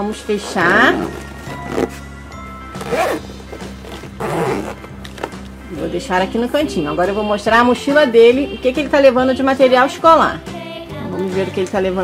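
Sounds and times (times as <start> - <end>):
background music: 0.0 - 12.0
suitcase zipper closing: 0.6 - 2.1, 2.7 - 5.5.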